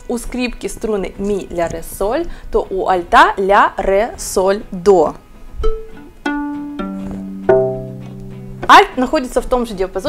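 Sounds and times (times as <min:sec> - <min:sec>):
viola strings plucked: 0:05.6 - 0:08.9.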